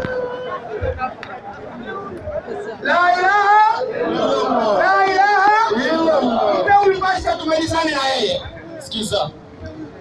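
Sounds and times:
crowd chatter: 0:00.0 - 0:10.0
man's voice over microphone: 0:04.7 - 0:09.4.

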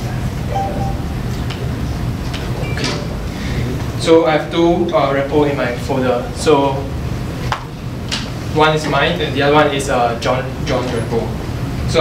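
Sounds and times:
steady low hum: 0:00.0 - 0:04.1.

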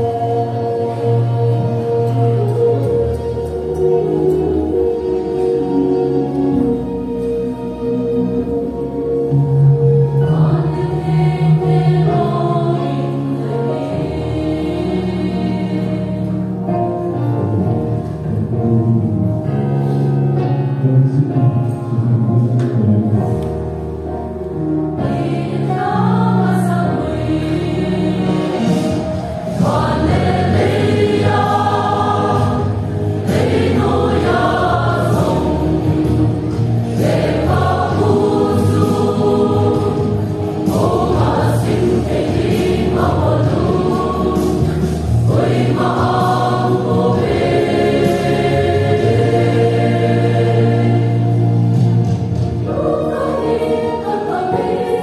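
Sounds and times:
mixed choir singing: 0:00.0 - 0:18.0, 0:24.5 - 0:55.0.

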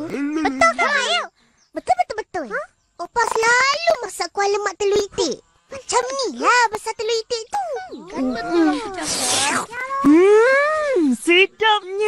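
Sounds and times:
cartoon boy vocal relish sounds: 0:07.5 - 0:11.0.

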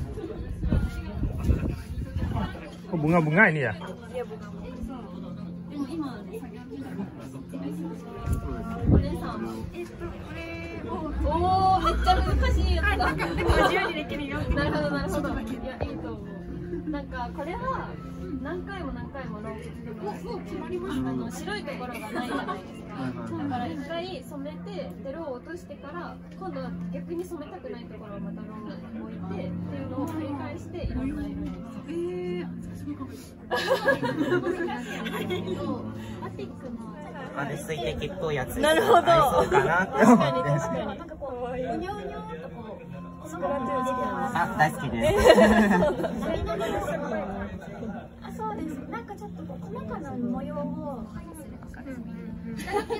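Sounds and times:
people talking over each other: 0:00.0 - 0:52.9
laughter: 0:11.7 - 0:13.9, 0:22.0 - 0:22.7, 0:33.5 - 0:35.8, 0:38.7 - 0:40.5, 0:45.0 - 0:47.0, 0:52.5 - 0:52.9.

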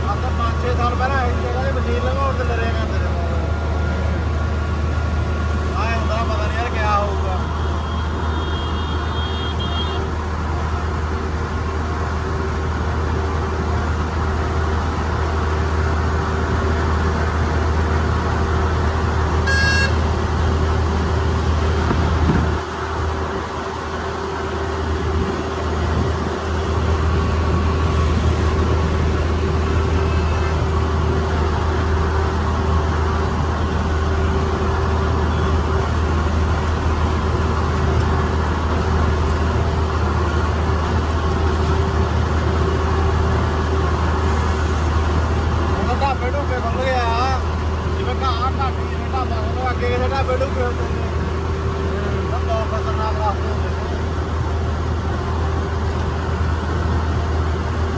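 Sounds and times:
diesel engine droning: 0:00.0 - 0:57.9.

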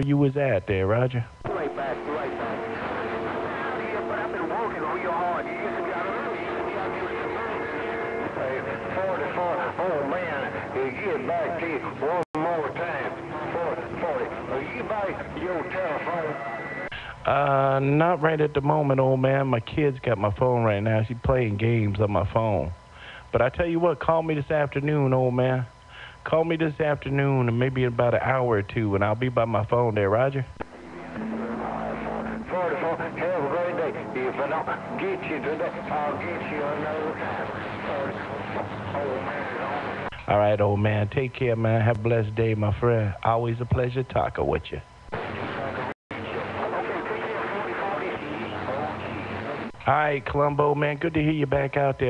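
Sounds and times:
garbled radio voice: 0:00.0 - 0:18.6, 0:26.3 - 0:52.0
radio hiss: 0:00.0 - 0:52.0
steady low tone: 0:01.2 - 0:16.9, 0:29.9 - 0:40.9.

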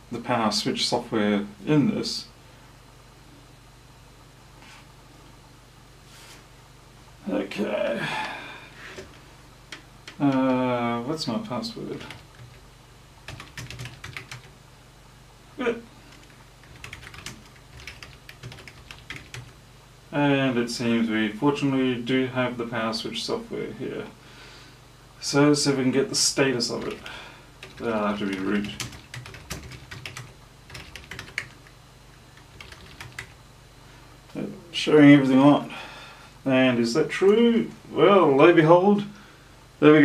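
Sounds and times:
steady low hum: 0:00.0 - 0:40.0
keyboard typing: 0:11.9 - 0:12.6, 0:13.2 - 0:14.5, 0:16.1 - 0:19.6, 0:26.8 - 0:31.7, 0:32.3 - 0:33.4.

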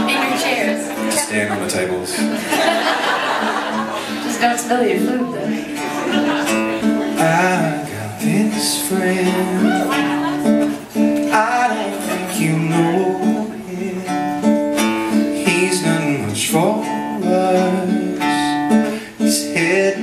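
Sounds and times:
acoustic guitar strumming: 0:00.0 - 0:20.0
person singing: 0:07.0 - 0:10.4, 0:11.2 - 0:14.4, 0:15.3 - 0:20.0.

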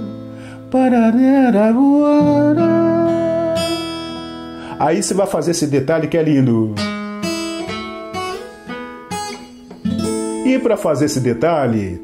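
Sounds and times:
fingerpicked acoustic guitar notes: 0:00.0 - 0:12.0.

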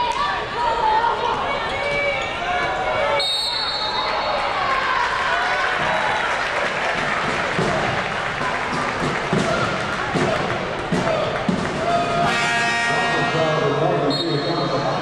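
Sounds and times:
players and crowd voices: 0:00.0 - 0:15.0
referee's whistle: 0:03.1 - 0:04.3, 0:14.0 - 0:14.8
basketball bouncing: 0:07.0 - 0:12.0.

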